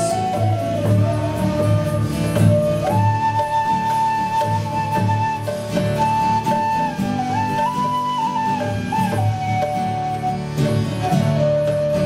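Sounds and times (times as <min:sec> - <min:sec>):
acoustic guitar strumming: 0:00.0 - 0:12.0
hand drum: 0:00.0 - 0:12.0.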